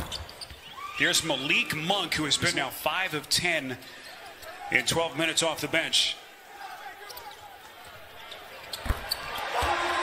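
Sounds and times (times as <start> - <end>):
faint arena background: 0.0 - 10.0.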